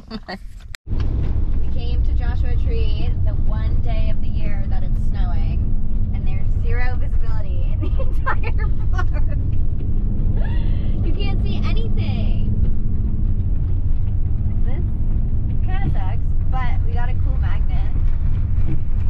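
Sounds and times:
engine and road noise rumble: 0.0 - 19.0.

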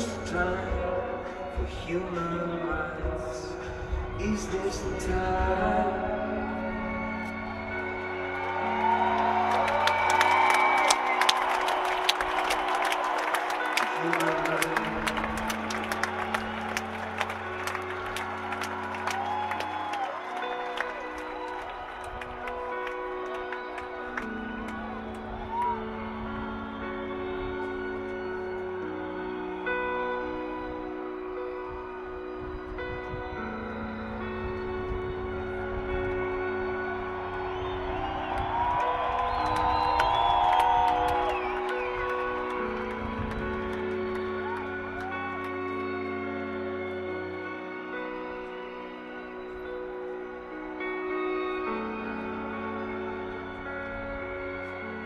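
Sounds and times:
synthesizer pad chords: 0.0 - 55.0
crowd clapping: 6.4 - 55.0
rising and falling whistles: 37.0 - 42.6.

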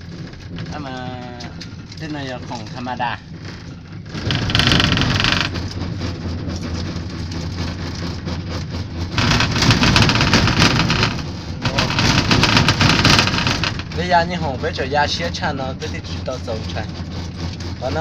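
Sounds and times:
cable car rumbling and rattling: 0.0 - 18.0.

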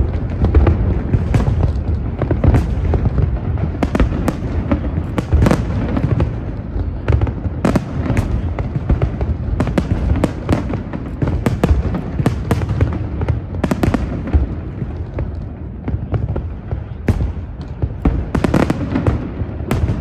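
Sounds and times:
fireworks bangs and crackles: 0.0 - 20.0.

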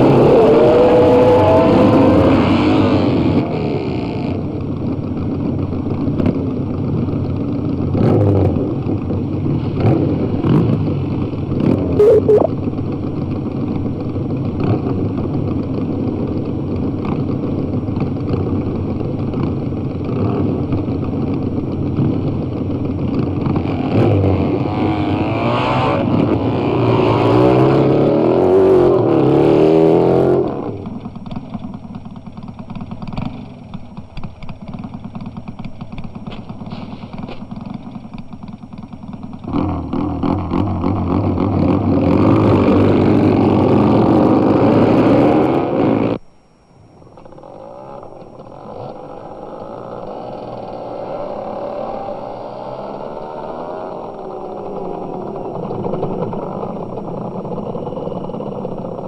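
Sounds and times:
motorcycle engines revving: 0.0 - 46.2, 47.1 - 59.0.

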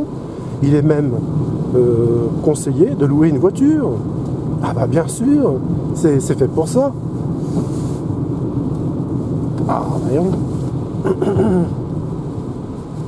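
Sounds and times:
road and tyre rumble: 0.0 - 13.0.

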